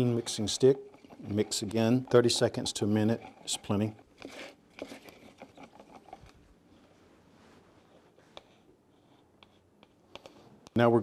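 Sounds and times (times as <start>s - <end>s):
stick scraping in plastic cup: 1.0s - 6.3s.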